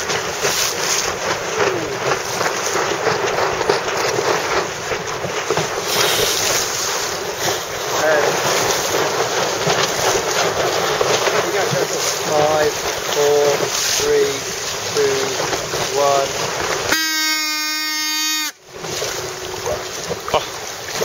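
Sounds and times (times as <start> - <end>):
wind buffeting microphone: 0.0 - 17.0
water splashing around boat: 0.0 - 21.0.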